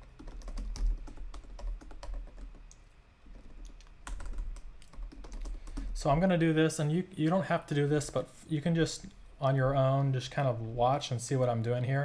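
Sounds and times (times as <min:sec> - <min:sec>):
computer keyboard typing: 0:00.0 - 0:06.0.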